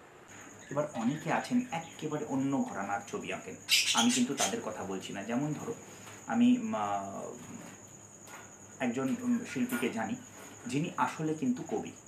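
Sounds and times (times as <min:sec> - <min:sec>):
high-pitched insect trill: 0:00.0 - 0:12.0
man speaking: 0:00.7 - 0:07.5, 0:08.8 - 0:12.0.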